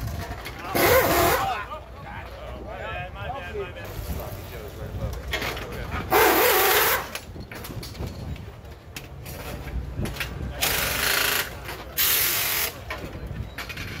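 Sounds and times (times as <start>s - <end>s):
pneumatic impact wrench bursts: 0.7s - 1.4s, 6.1s - 7.2s, 10.6s - 12.8s.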